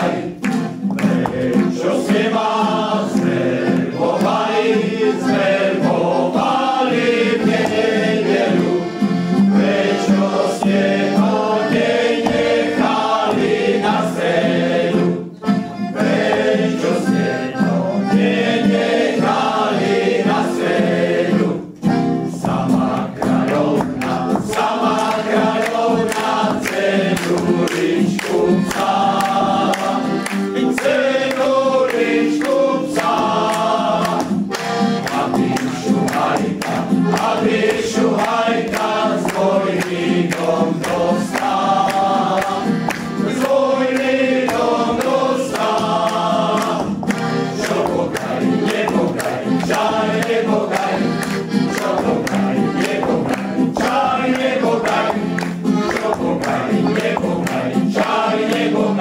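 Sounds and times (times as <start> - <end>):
accordion: 0.0 - 59.0
acoustic guitar: 0.0 - 59.0
men's choir singing: 0.0 - 59.0.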